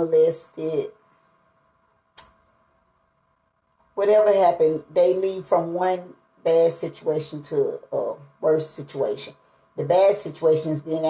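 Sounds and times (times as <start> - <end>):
faint room hum: 0.0 - 11.0
sharp click: 2.2 - 2.4.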